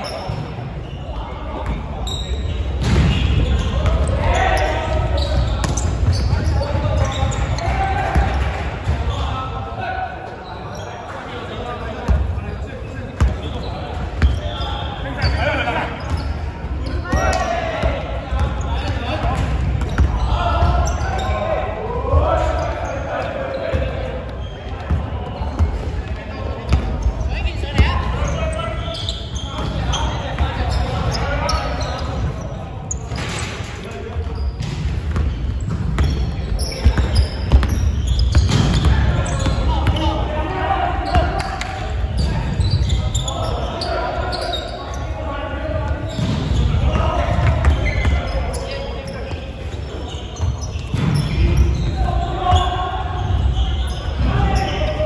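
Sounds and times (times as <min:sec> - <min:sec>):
players' voices echoing: 0:00.0 - 0:55.0.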